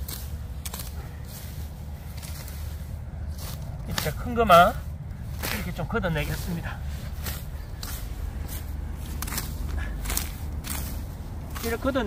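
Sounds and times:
low microphone rumble: 0.0s - 12.0s
sickle cutting dry grass: 0.0s - 12.0s.

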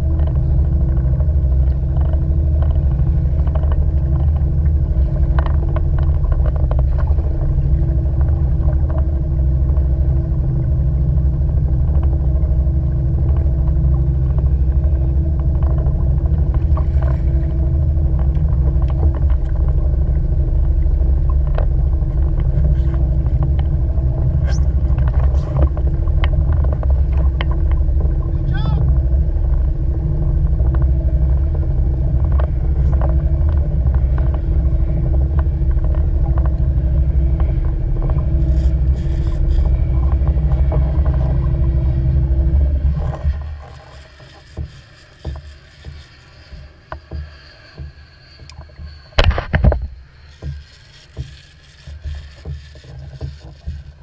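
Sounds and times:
outboard motor droning: 0.0s - 54.0s.

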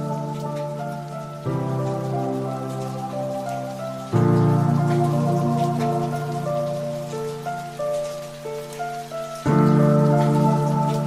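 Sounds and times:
ambient background music: 0.0s - 11.0s
faint steady hiss: 0.0s - 11.0s.

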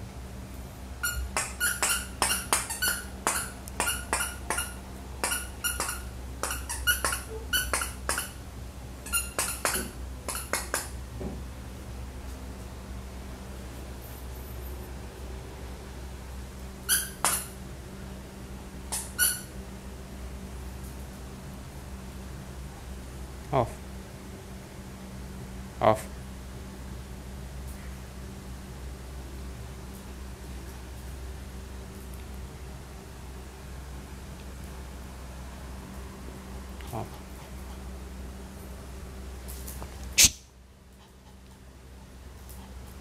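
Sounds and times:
dog claws clicking on tiles: 1.3s - 8.4s, 9.4s - 11.0s.

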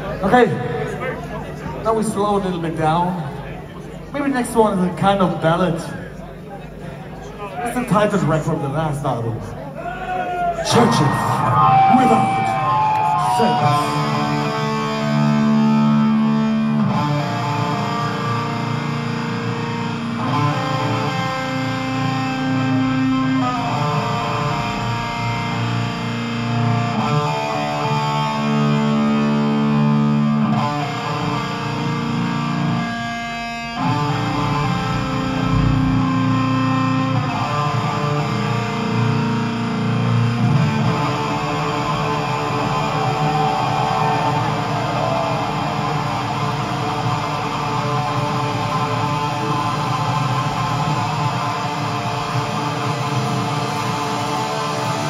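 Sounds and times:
metal band playing live: 10.6s - 55.0s
distorted electric guitar chords: 11.0s - 55.0s.

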